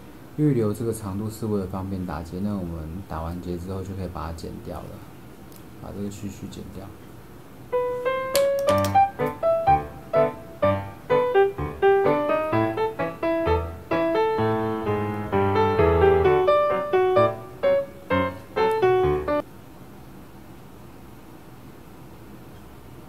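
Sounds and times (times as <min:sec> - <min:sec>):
lively piano music: 0:07.7 - 0:19.4.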